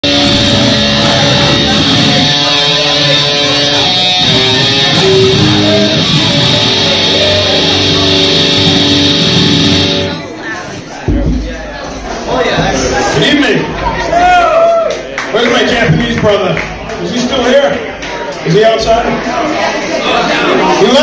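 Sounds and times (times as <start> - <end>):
instrumental rock with electric guitar: 0.0 - 10.3.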